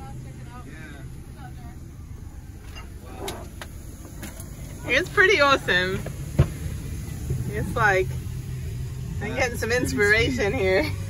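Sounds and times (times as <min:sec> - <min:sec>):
people talking: 0:00.0 - 0:03.4, 0:04.6 - 0:06.1, 0:07.3 - 0:08.2, 0:09.0 - 0:11.0
steady low rumble: 0:00.0 - 0:11.0.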